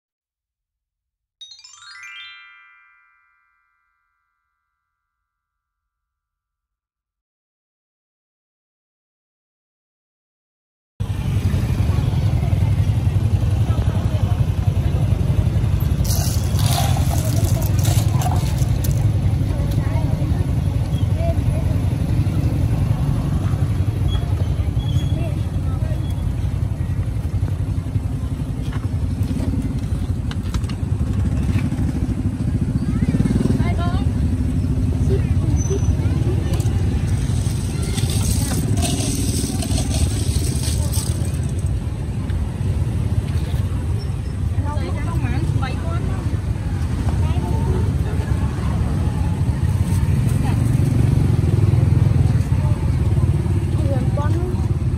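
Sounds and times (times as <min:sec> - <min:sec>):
traffic rumble: 0:11.0 - 0:54.9
people talking: 0:11.1 - 0:30.2, 0:31.8 - 0:54.9.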